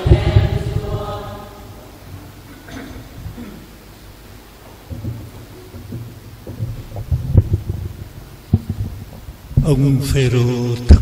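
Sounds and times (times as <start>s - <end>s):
low thumps and knocks: 0.0s - 1.3s, 4.6s - 9.8s.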